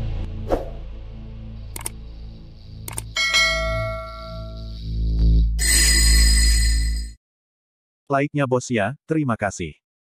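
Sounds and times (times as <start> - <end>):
short clicks: 1.7 - 2.0, 2.9 - 3.2
bright bell-like chime: 3.2 - 4.9, 5.6 - 7.2.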